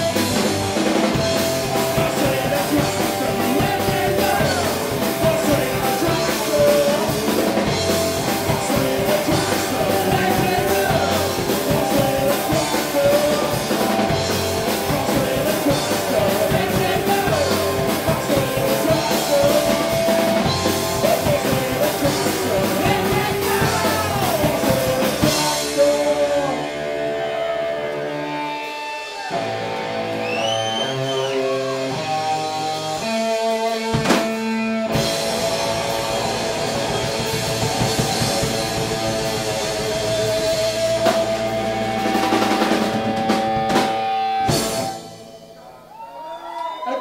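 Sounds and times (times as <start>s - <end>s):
drum kit: 0.0s - 45.6s
electric guitars: 0.0s - 45.6s.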